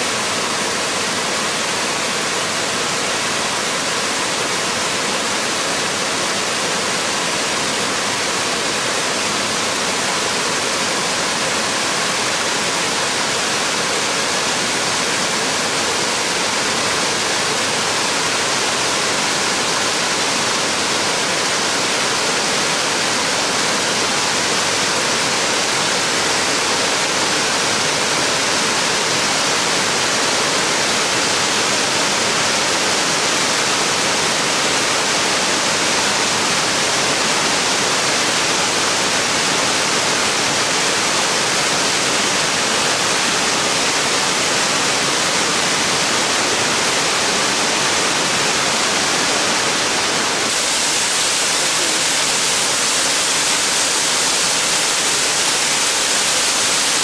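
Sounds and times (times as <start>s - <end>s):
waterfall rushing over rock: 0.0s - 57.0s.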